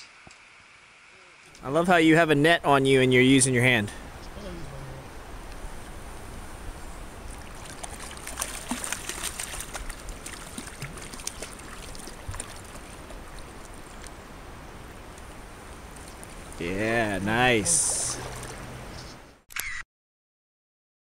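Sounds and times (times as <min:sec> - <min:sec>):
stream water running: 0:00.1 - 0:19.4
fish splashing at the surface: 0:07.3 - 0:13.8.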